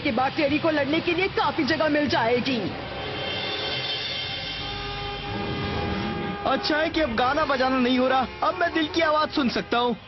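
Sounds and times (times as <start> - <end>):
low rumble: 5.2 - 6.5.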